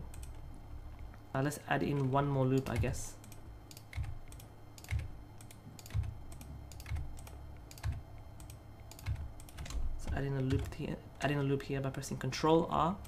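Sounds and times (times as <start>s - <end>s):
keyboard keys clicking: 1.9s - 10.8s.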